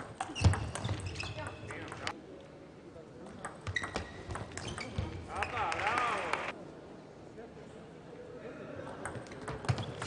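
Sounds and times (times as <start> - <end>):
ping pong ball hitting rackets: 3.3 - 5.1.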